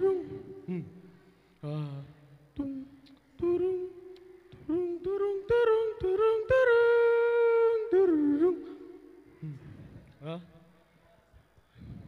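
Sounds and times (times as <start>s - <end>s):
humming-like melody: 0.0s - 1.0s.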